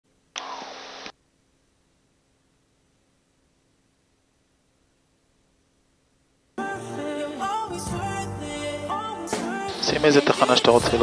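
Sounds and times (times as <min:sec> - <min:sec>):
radio static burst: 0:00.4 - 0:01.1.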